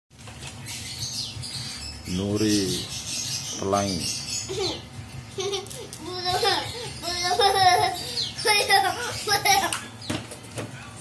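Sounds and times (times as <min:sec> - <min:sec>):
steady low hum: 0:00.2 - 0:11.0.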